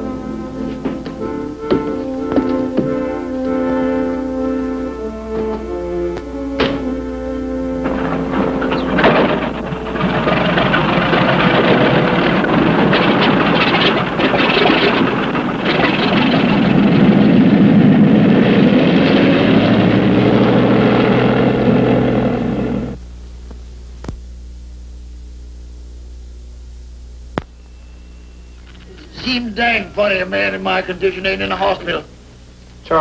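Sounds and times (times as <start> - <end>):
light aircraft engine running: 0.0 - 23.0.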